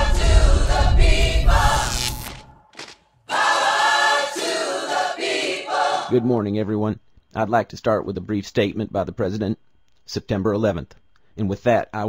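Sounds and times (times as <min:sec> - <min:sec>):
choir singing sustained chords: 0:00.0 - 0:06.4.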